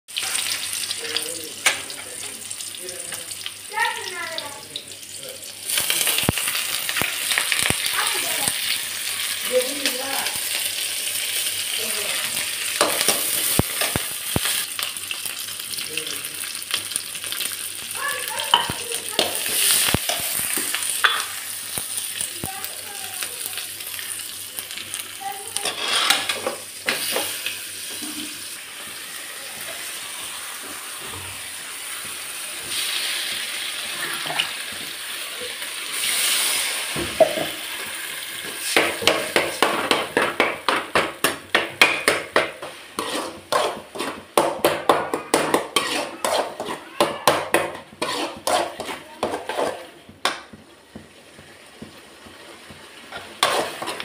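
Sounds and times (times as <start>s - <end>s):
onions sizzling in hot oil: 0.1s - 54.0s
steel spoon scraping a wok: 25.6s - 26.5s, 42.6s - 44.2s, 45.5s - 46.9s, 47.7s - 50.0s, 53.1s - 54.0s.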